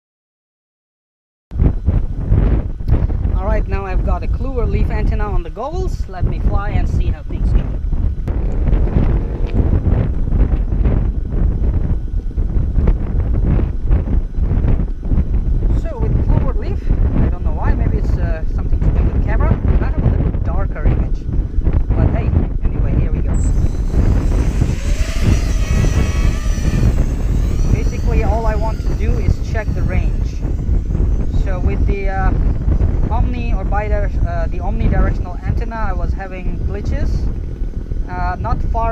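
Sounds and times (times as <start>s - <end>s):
wind buffeting microphone: 1.5s - 38.9s
quadcopter motors whining: 8.3s - 13.8s, 23.2s - 38.0s.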